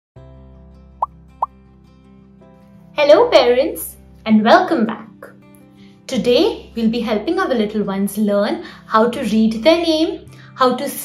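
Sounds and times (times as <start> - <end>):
soft background music: 0.2 - 11.0.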